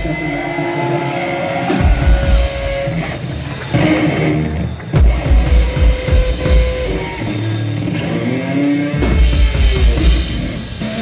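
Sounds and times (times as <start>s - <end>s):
electric guitar long notes: 0.0s - 11.0s.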